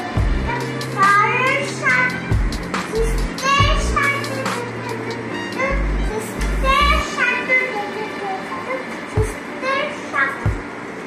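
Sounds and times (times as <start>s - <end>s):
young child's voice: 0.0s - 10.6s.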